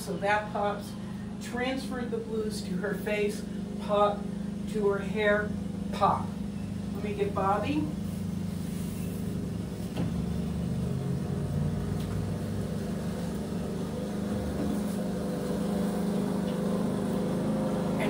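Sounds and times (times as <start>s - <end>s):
lawn mower engine running: 5.6s - 18.0s.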